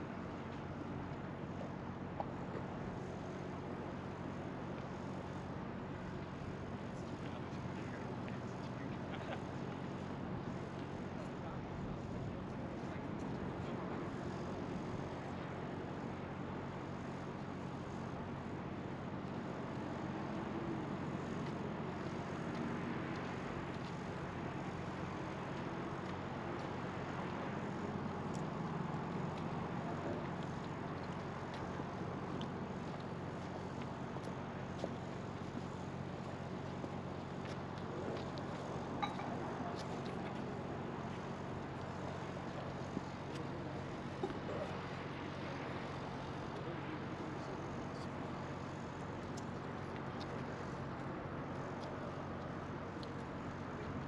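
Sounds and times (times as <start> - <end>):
faint voices: 34.5 - 54.0.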